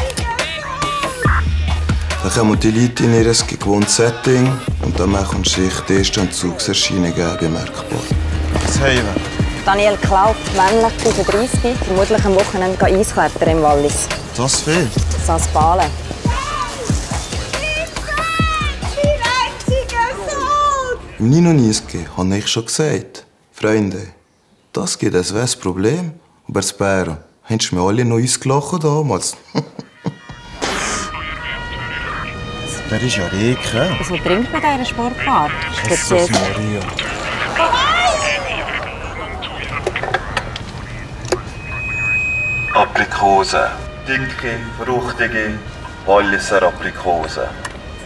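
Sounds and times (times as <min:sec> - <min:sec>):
music with deep beats: 0:00.0 - 0:03.4, 0:07.8 - 0:19.9
traffic rumble: 0:04.6 - 0:22.4, 0:30.4 - 0:48.0
raised voices calling out: 0:15.6 - 0:21.4, 0:31.1 - 0:42.0
person speaking: 0:32.8 - 0:41.2
high-pitched tone: 0:40.8 - 0:48.0.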